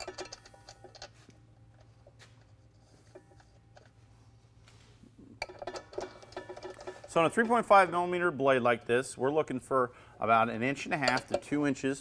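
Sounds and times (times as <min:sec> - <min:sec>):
metallic clicks of nut threading: 0:00.0 - 0:01.2, 0:11.0 - 0:11.6
steady low hum: 0:00.0 - 0:12.0.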